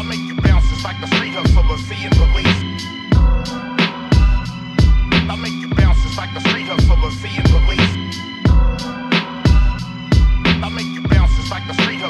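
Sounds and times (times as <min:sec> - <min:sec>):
hip hop beat: 0:00.0 - 0:12.0.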